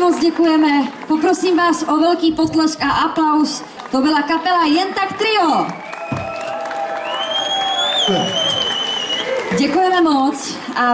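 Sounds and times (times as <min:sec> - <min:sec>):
audience cheering and applauding: 0:03.8 - 0:10.1
high rising whistle: 0:07.0 - 0:09.3.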